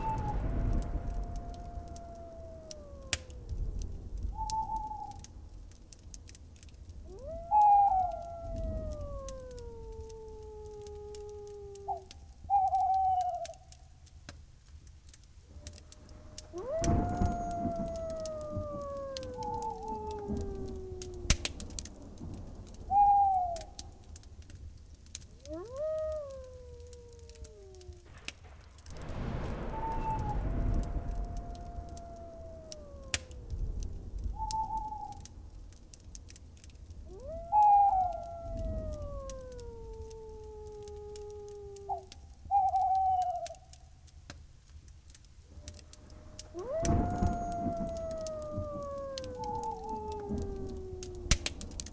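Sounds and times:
animal howls falling in pitch: 0.0 - 5.3, 7.0 - 13.8, 15.5 - 24.1, 25.4 - 35.3, 37.0 - 43.8, 45.6 - 51.9.

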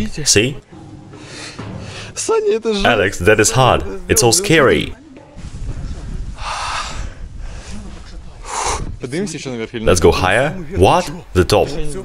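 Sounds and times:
low microphone rumble: 2.8 - 9.0.

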